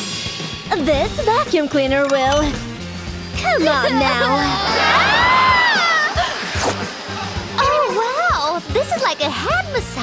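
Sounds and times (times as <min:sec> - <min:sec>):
background music: 0:00.0 - 0:10.0
girl screaming: 0:03.8 - 0:06.2.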